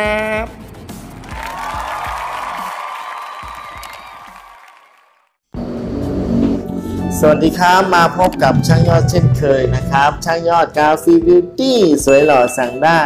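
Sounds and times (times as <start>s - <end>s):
background music: 0.0s - 4.6s, 5.6s - 13.0s.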